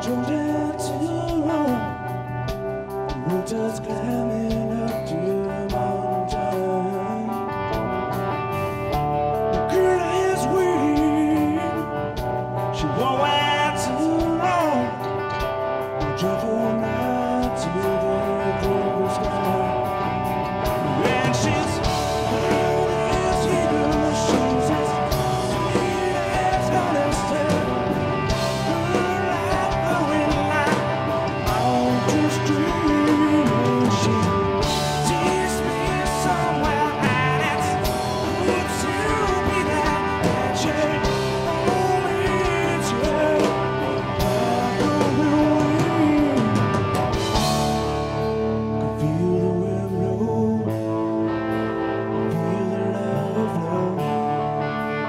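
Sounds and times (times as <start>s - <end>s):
bass: 0.0s - 55.0s
drums: 0.0s - 55.0s
electric guitar melody: 0.0s - 55.0s.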